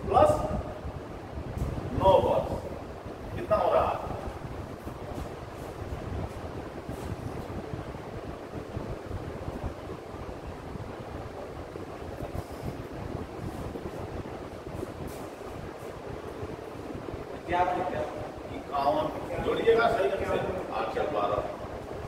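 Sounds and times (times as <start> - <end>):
low rumbling background noise: 0.0 - 22.0.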